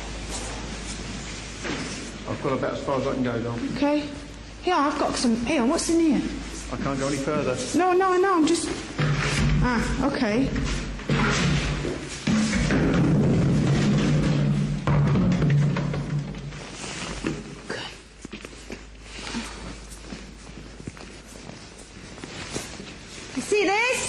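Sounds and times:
faint knocks and thuds: 0:08.9 - 0:17.6.

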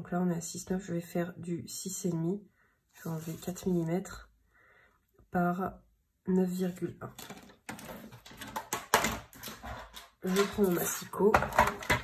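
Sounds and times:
paper rustling: 0:03.0 - 0:03.9.

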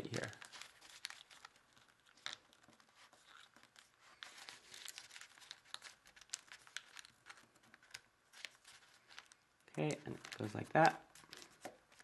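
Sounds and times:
paper crinkling being folded: 0:00.0 - 0:12.0.

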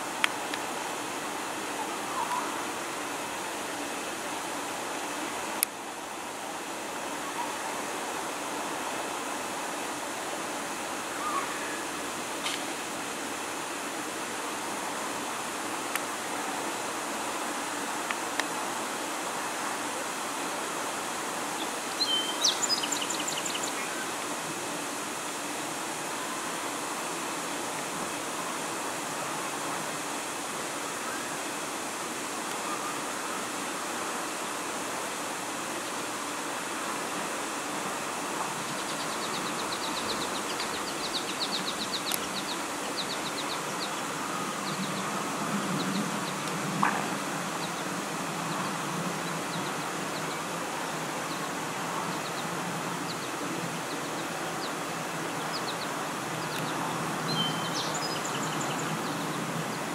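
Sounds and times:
steady outdoor hiss: 0:00.0 - 0:59.9.

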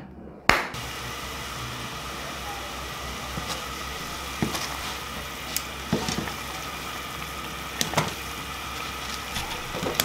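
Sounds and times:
gas burner rumble: 0:00.8 - 0:10.0
water boiling: 0:00.8 - 0:10.0
stove click: 0:07.7 - 0:08.3, 0:09.1 - 0:10.0.

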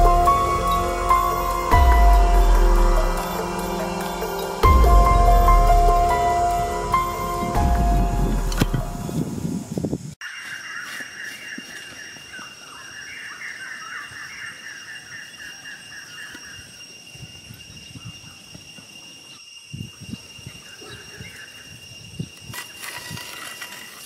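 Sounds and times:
background music: 0:00.0 - 0:09.6
thin insect drone: 0:00.0 - 0:24.0
stone disc scraping on dirt: 0:22.2 - 0:24.0.

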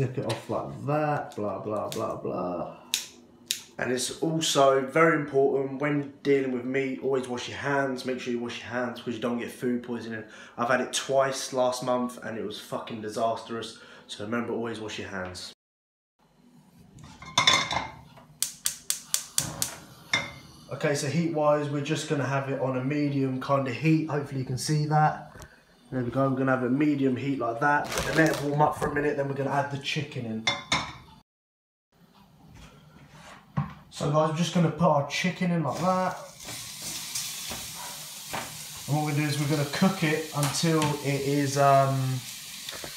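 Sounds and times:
gas hob igniter clicking: 0:18.4 - 0:19.8
chicken sizzling in a pan: 0:35.7 - 0:42.9.

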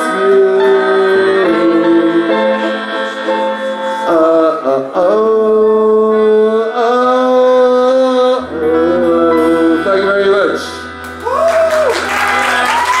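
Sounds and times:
sustained bending melody line: 0:00.0 - 0:11.4.

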